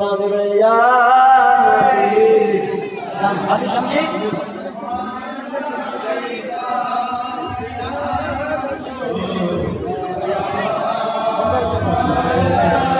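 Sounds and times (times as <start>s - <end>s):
men chanting together: 0.6s - 12.9s.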